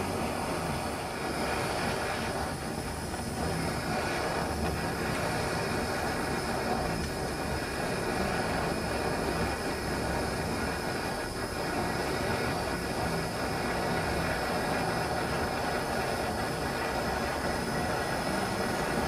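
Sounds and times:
propane torch hissing: 0:00.0 - 0:19.0.

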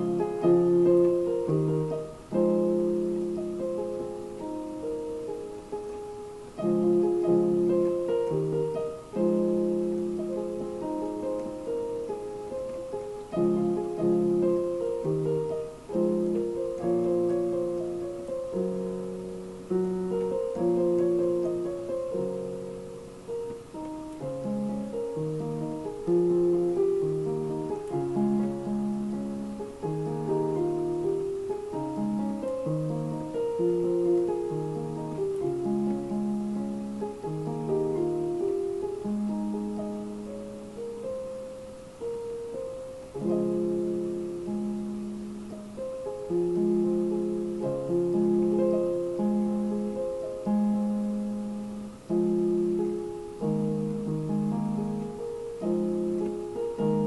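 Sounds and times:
digital piano chords: 0:00.0 - 0:57.0.

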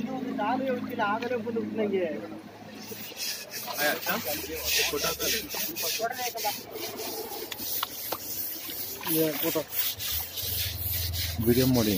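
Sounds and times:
brush scrubbing wet hide: 0:02.7 - 0:11.9.

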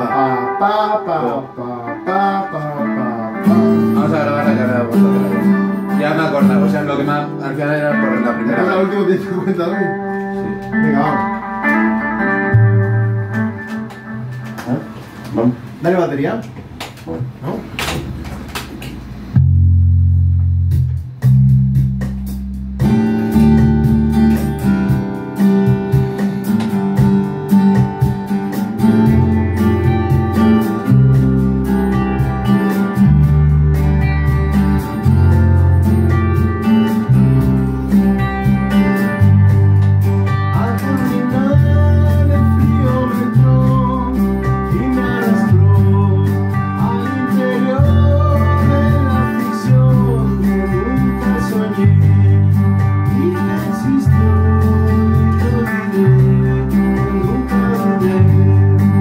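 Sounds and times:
electric bass line: 0:00.0 - 0:59.0
electric guitars playing rock: 0:00.0 - 0:59.0.

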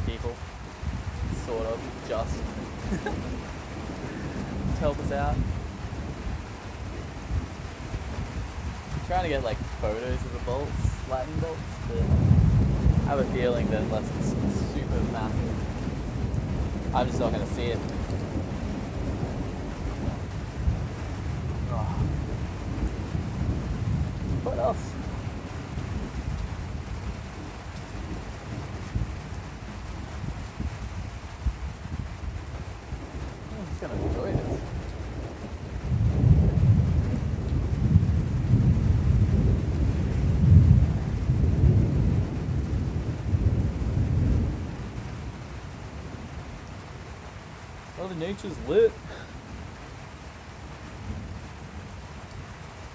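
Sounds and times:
steady rain: 0:00.0 - 0:52.9
thunder rumbling: 0:00.0 - 0:52.9.

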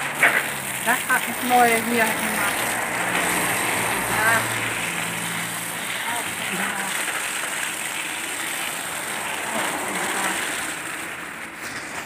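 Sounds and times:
hose spraying water on plants: 0:00.0 - 0:12.0.

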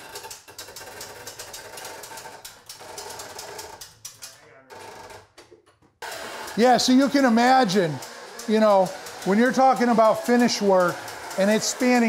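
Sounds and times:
winch ratchet clicking: 0:00.0 - 0:05.3, 0:06.0 - 0:12.0.

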